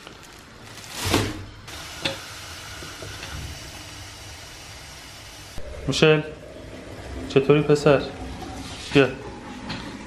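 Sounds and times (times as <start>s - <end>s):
plastic bag rustling: 0.0s - 1.7s
gas burners hissing: 1.6s - 10.0s.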